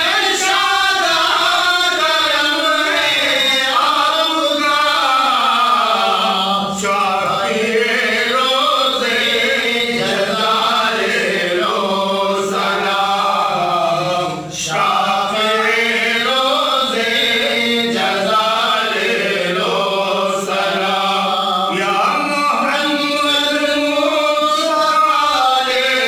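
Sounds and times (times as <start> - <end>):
man chanting: 0.0 - 26.0.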